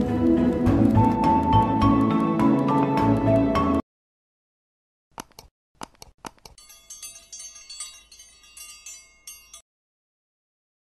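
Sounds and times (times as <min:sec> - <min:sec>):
mouse clicks: 0:05.2 - 0:06.6
tinkling bell chime: 0:06.6 - 0:09.6.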